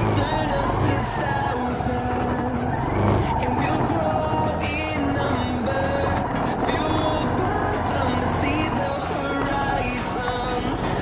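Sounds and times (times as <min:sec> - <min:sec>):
background music with steady beat: 0:00.0 - 0:11.0
motorcycle engine running: 0:00.0 - 0:11.0.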